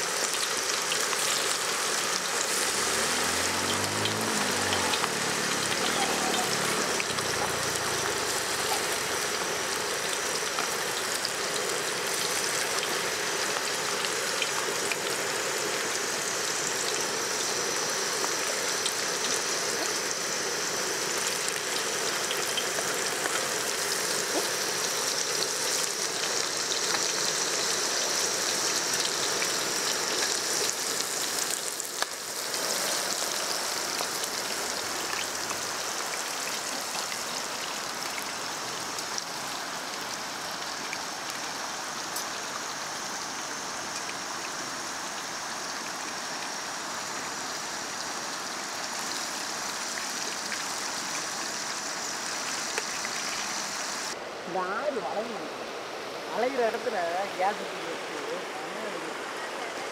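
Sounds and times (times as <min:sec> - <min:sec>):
food sizzling in hot oil: 0:00.0 - 0:54.2.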